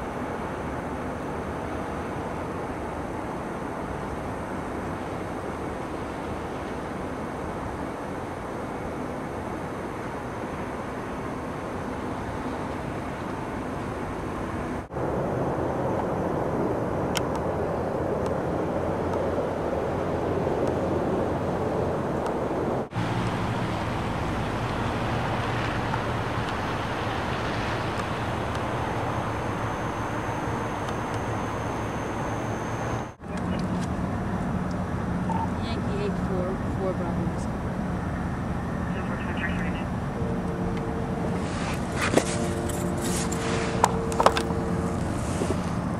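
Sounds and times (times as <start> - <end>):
gas flare rushing rumble: 0.0 - 45.9
steady low hum: 0.0 - 45.9.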